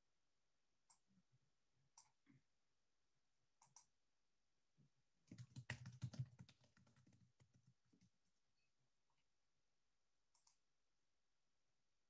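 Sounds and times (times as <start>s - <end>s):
computer keyboard typing: 5.3s - 8.2s.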